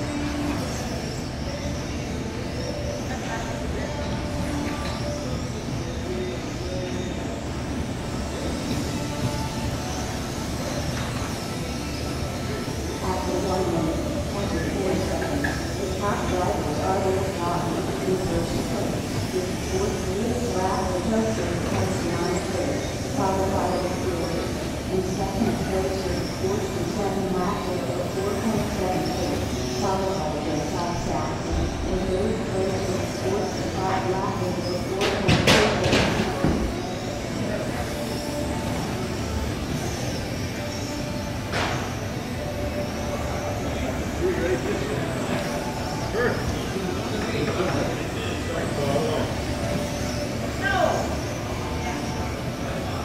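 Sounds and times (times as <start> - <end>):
electric rc cars whining: 0.0 - 35.0, 35.6 - 53.0
indistinct voices: 0.0 - 53.0.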